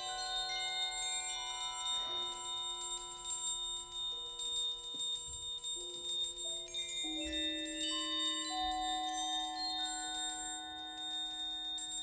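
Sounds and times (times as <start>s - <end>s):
bell-like metal percussion music: 0.0s - 12.0s.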